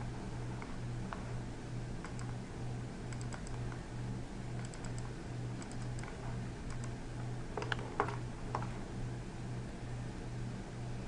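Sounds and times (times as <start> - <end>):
low pulsing hum: 0.0 - 11.0
mouse and keyboard clicks: 2.0 - 2.4, 3.1 - 3.8, 4.6 - 7.0, 7.6 - 8.7.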